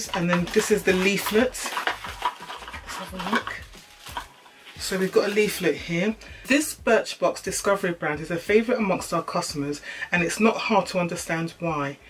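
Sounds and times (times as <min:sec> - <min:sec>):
paper and boxes rustling: 0:00.0 - 0:06.1.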